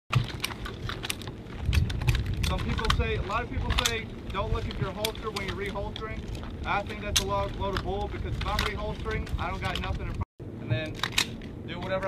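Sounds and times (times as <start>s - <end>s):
rifles and gear clicking: 0.1s - 10.2s, 10.8s - 12.0s
wind rumble on microphone: 0.1s - 12.0s.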